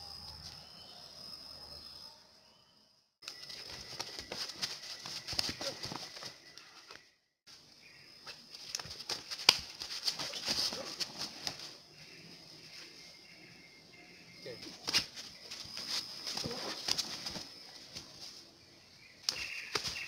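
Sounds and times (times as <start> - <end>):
hands slapping bodies: 3.2 - 7.0, 8.6 - 11.7, 14.8 - 18.0, 19.2 - 20.0.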